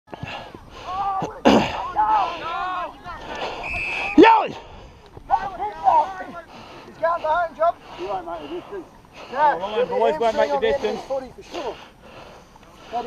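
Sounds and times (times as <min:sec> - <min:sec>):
men calling and shouting: 0:00.1 - 0:13.0.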